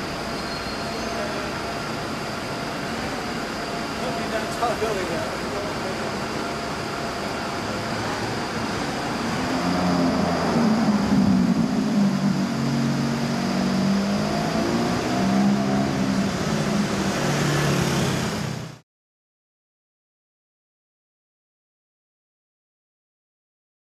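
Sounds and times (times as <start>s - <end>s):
city traffic: 0.0s - 18.8s
car passing close: 7.4s - 18.8s.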